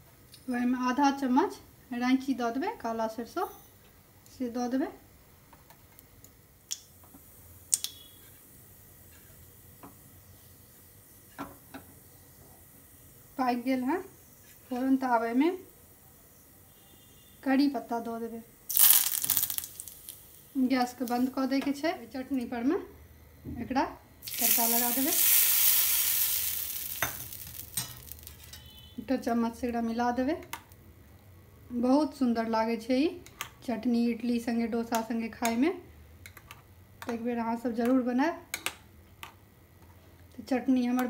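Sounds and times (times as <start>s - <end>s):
faint steady hiss: 0.0s - 41.0s
mustard seeds popping in oil: 7.7s - 8.2s, 18.7s - 22.5s, 24.2s - 29.3s.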